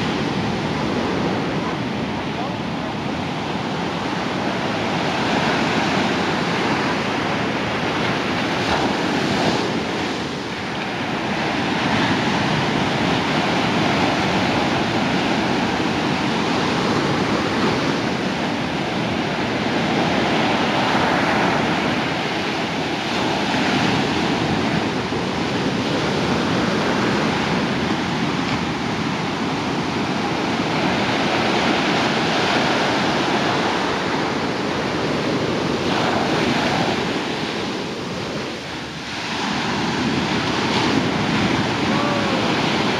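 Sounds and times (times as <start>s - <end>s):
waves breaking on a beach: 0.0s - 42.9s.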